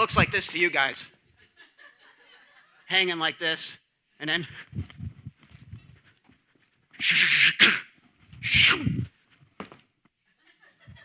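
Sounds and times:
man's breathy vocal bursts: 0:07.0 - 0:09.0.

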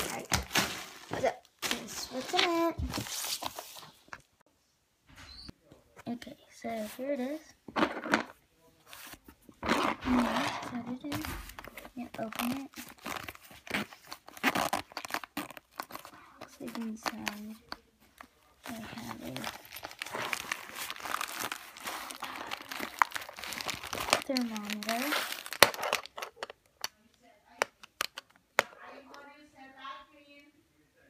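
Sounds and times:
fabric pouch rustling: 0:08.9 - 0:26.0
zipper pulled open: 0:09.6 - 0:11.2, 0:12.9 - 0:16.1.

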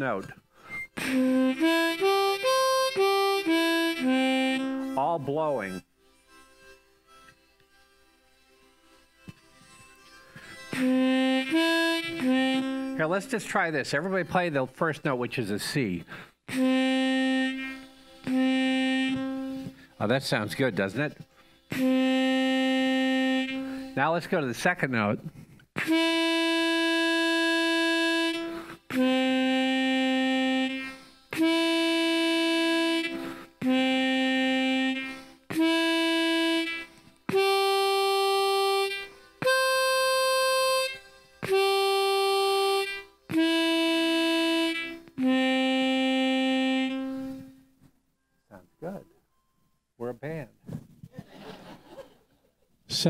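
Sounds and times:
harmonica sustained notes: 0:00.0 - 0:25.0, 0:25.8 - 0:49.0.

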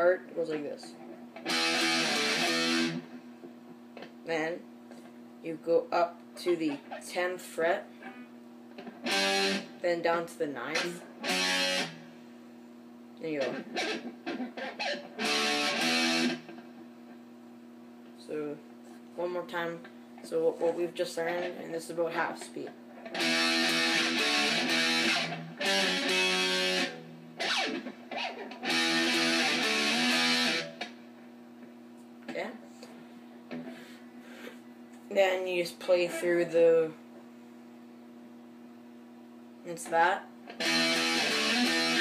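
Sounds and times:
faint amp hum: 0:00.0 - 0:42.0
electric guitar power chords: 0:01.4 - 0:03.2, 0:08.1 - 0:09.8, 0:10.7 - 0:12.2, 0:13.4 - 0:16.8, 0:23.0 - 0:31.0, 0:40.5 - 0:42.0.

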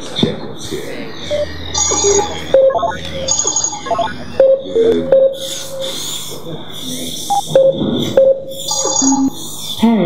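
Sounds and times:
computer console beeps: 0:01.2 - 0:06.2, 0:07.2 - 0:09.8.

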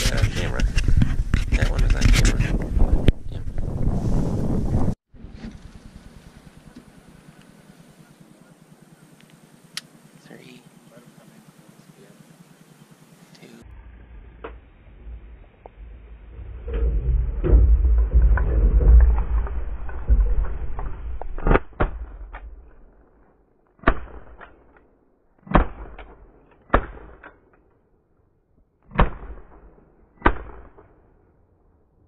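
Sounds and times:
handling noise rumbling and knocking: 0:00.0 - 0:08.0, 0:14.0 - 0:22.8
shotgun shots: 0:23.8 - 0:24.6, 0:25.4 - 0:27.3, 0:28.9 - 0:31.0.

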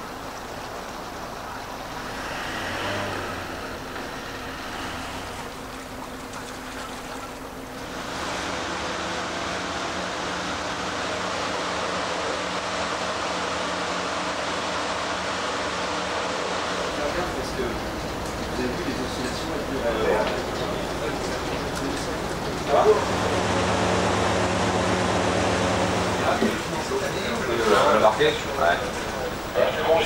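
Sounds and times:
ship engine running: 0:00.0 - 0:30.0.

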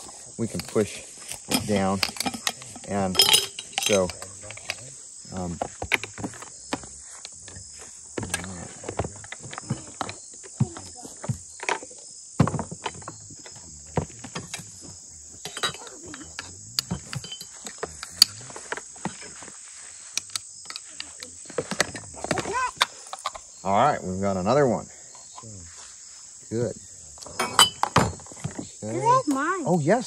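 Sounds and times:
insects chirring: 0:00.0 - 0:30.0
spoon clinking on glass jars: 0:00.5 - 0:04.8, 0:15.4 - 0:18.4, 0:27.3 - 0:28.4.

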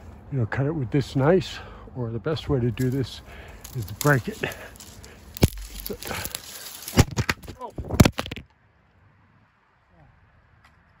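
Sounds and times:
branches snapping: 0:02.7 - 0:08.5.

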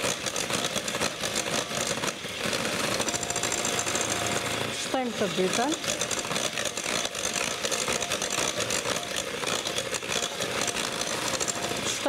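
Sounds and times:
electric hand mixer whisking batter: 0:00.0 - 0:12.0.

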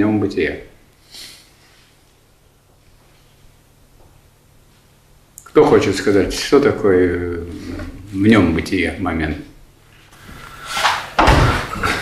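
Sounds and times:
rustling noise: 0:01.6 - 0:05.0.

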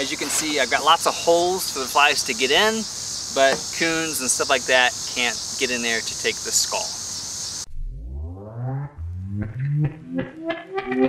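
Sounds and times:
insect hiss: 0:00.0 - 0:07.7
background music with picked notes: 0:09.8 - 0:11.0.

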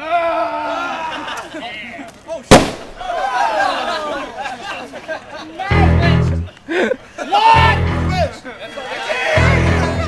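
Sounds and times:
grenade bang: 0:02.5 - 0:03.1.

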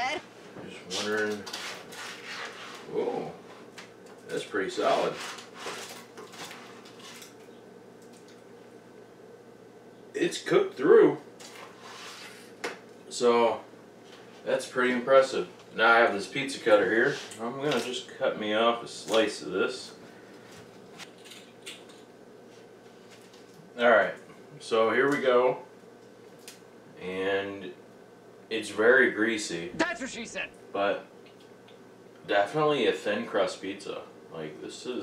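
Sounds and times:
spatula scraping baking sheet: 0:01.5 - 0:02.9, 0:05.0 - 0:05.8.

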